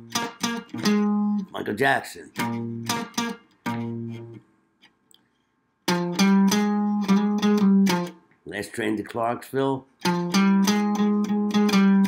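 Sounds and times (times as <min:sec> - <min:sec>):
archtop guitar chords: 0:00.0 - 0:04.4, 0:05.9 - 0:08.2, 0:10.0 - 0:12.0.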